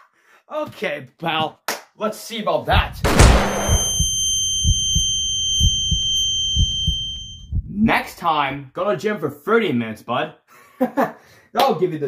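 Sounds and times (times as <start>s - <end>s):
heartbeat thumps: 2.7s - 8.2s
high-pitched ringing tone: 3.1s - 7.6s.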